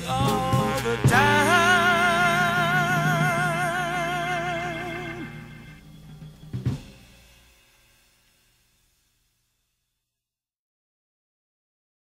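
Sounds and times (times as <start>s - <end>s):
drum kit closing hits: 0.0s - 4.4s, 5.2s - 7.3s
soul-jazz band chord: 0.0s - 7.3s
cymbal ringing: 0.0s - 9.9s.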